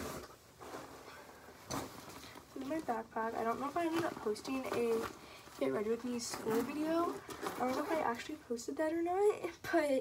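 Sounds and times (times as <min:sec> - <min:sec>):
fabric backpack rustling: 0:00.0 - 0:08.3.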